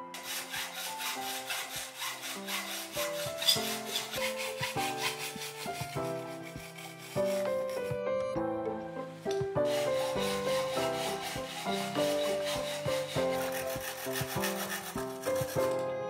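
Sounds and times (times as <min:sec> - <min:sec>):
hacksaw cutting: 0:00.0 - 0:08.0, 0:09.0 - 0:15.8.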